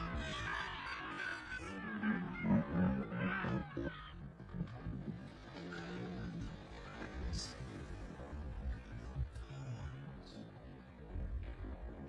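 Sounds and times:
lion growling: 0:00.0 - 0:10.0.

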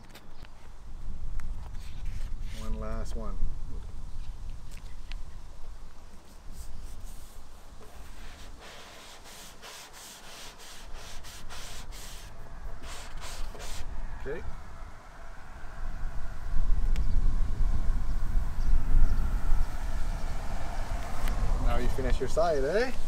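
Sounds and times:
squeegee rubbing over paper: 0:01.8 - 0:02.8, 0:06.2 - 0:13.8.

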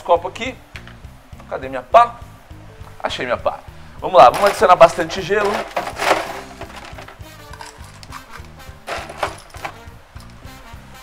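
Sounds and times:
background music with steady beat: 0:00.0 - 0:11.0
ice cubes clattering into glass: 0:04.3 - 0:08.3, 0:08.9 - 0:09.8.

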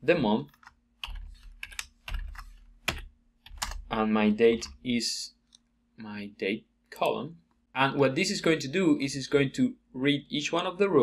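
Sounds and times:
keyboard keystrokes: 0:00.6 - 0:03.8.

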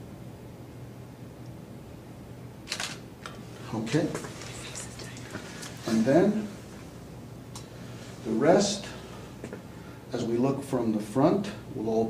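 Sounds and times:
camera shutter double click: 0:02.7 - 0:03.0.

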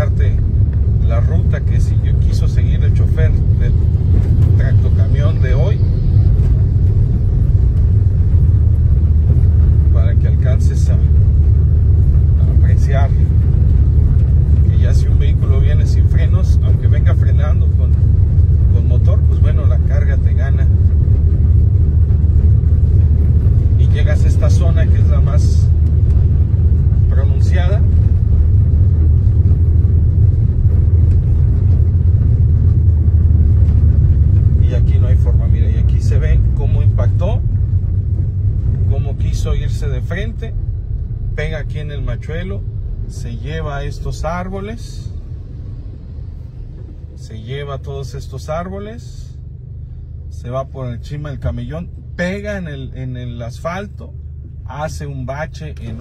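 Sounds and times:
car driving rumble inside cabin: 0:00.0 - 0:56.0.

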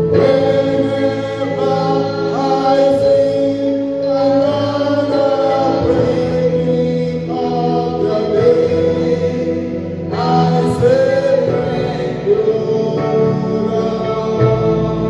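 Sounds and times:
man singing through microphone: 0:00.0 - 0:15.0
voices singing along: 0:00.0 - 0:15.0.

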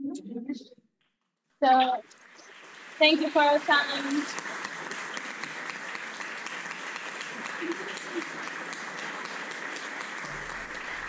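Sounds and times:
audience applauding: 0:02.1 - 0:11.0.

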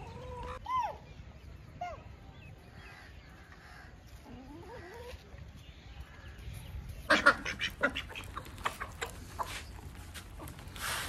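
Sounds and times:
ducks quacking: 0:07.0 - 0:09.7.

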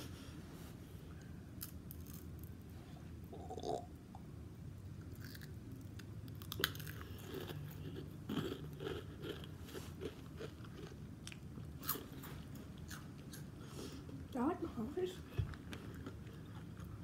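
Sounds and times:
person chewing food: 0:05.0 - 0:14.3, 0:15.4 - 0:17.0.

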